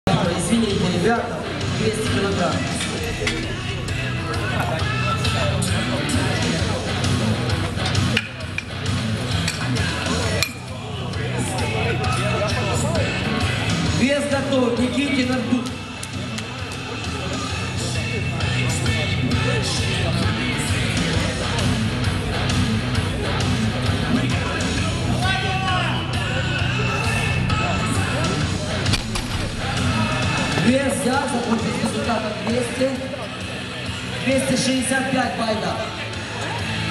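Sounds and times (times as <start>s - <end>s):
voices: 0.1s - 8.6s
background music: 0.1s - 36.9s
crowd voices: 0.1s - 36.9s.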